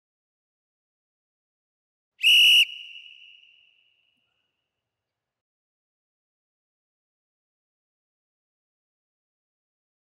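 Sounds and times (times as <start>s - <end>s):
high whistle blast: 2.2s - 3.9s.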